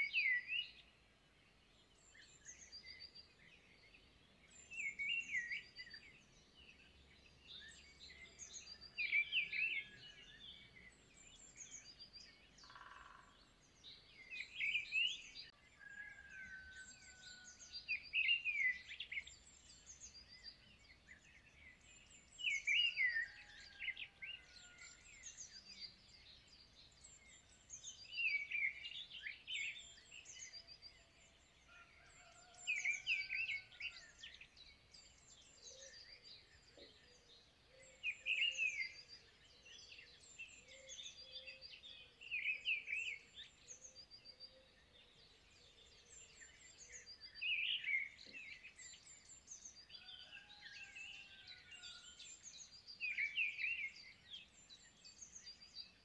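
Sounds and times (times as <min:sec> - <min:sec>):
songbird singing: 0:00.0 - 0:56.0.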